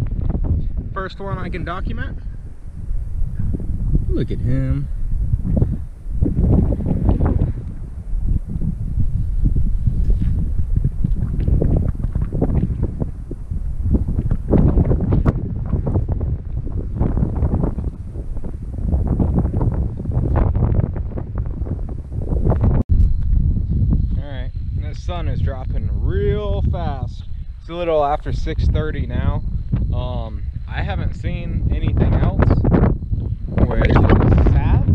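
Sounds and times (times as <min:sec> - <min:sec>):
wind buffeting microphone: 0:00.0 - 0:34.9.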